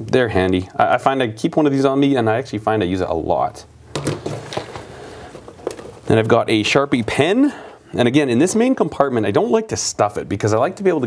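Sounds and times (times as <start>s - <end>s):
leather rustling and creaking: 4.1s - 6.4s.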